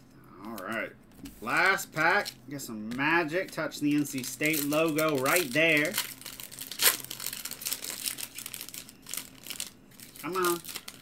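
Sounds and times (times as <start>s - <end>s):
foil wrapper crinkling: 1.5s - 11.0s
foil wrapper ripping: 3.3s - 11.0s.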